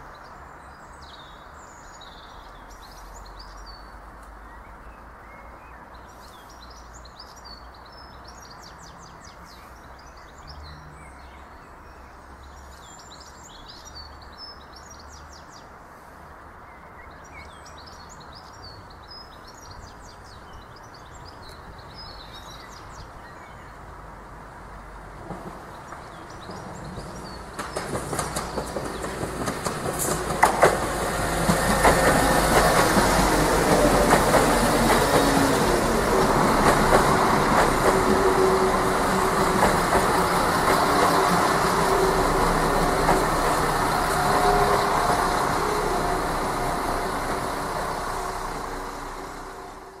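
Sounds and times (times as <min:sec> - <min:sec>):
train engine rumble: 0:23.8 - 0:50.0
train wheels clicking over rail joints: 0:25.2 - 0:48.6.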